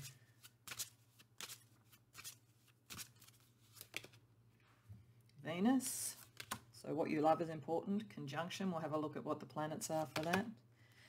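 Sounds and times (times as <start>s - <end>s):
cards snapping while shuffled: 0.7s - 1.6s, 2.2s - 4.2s, 6.3s - 6.6s.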